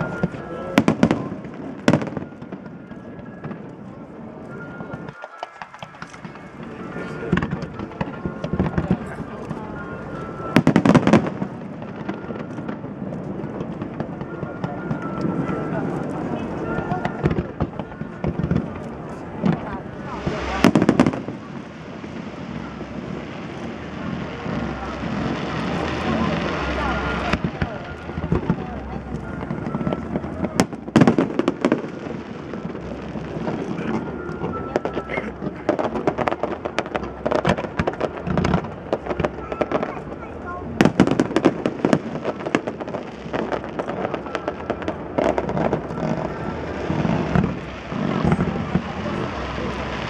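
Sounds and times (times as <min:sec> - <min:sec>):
fireworks crackling and banging: 0:00.0 - 0:50.0.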